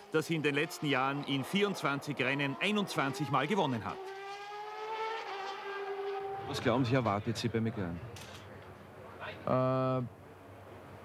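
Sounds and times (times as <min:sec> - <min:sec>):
racing car engine at high revs: 0:00.0 - 0:07.2.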